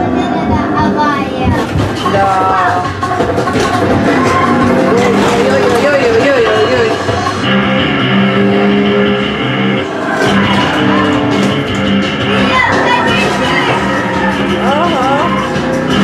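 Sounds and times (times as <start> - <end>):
car engine sounds: 2.8 - 16.0
video game music: 2.8 - 16.0.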